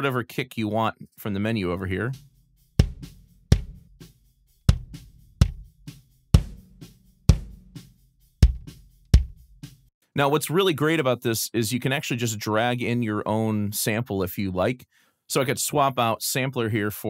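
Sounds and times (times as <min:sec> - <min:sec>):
drum kit kick and snare beat: 0:02.0 - 0:09.9.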